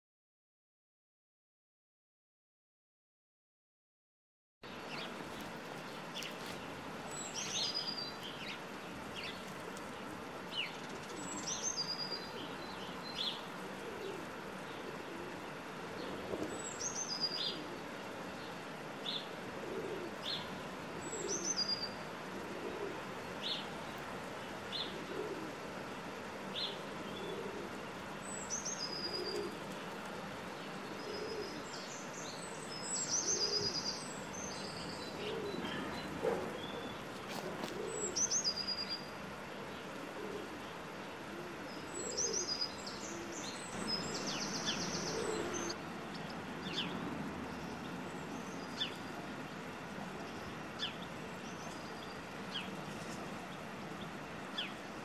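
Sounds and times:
low bird calls: 0:04.8 - 0:54.8.

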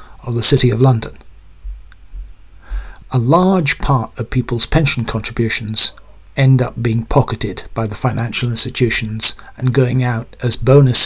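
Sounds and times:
soft breath: 0:02.5 - 0:03.1.

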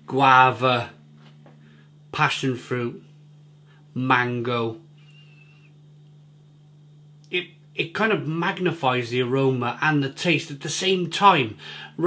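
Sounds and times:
steady low hum: 0:00.0 - 0:12.0
faint thin whistling tone: 0:05.0 - 0:06.0.

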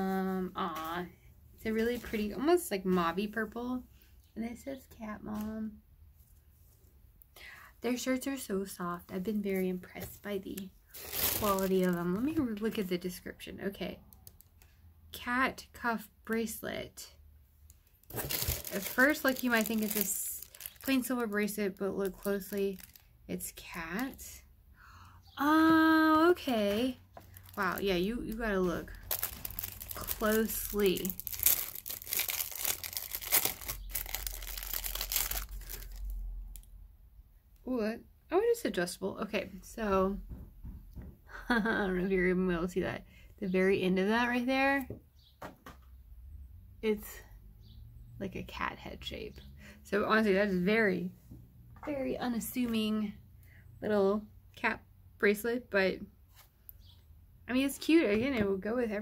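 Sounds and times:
woman speaking: 0:00.0 - 0:03.8, 0:04.4 - 0:05.8, 0:07.8 - 0:14.0, 0:15.1 - 0:17.2, 0:18.6 - 0:24.5, 0:25.4 - 0:29.0, 0:29.9 - 0:31.2, 0:37.6 - 0:40.2, 0:41.6 - 0:44.9, 0:46.8 - 0:47.2, 0:48.2 - 0:51.1, 0:51.8 - 0:53.2, 0:57.5 - 0:59.0
packaging crinkling: 0:10.6 - 0:12.1, 0:17.9 - 0:23.2, 0:27.3 - 0:36.7.

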